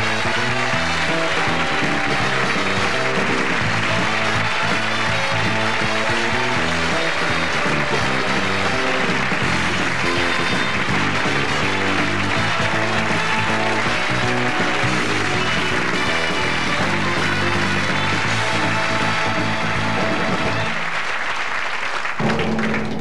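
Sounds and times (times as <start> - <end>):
theme music: 0.0 - 22.8
audience applauding: 0.0 - 23.0.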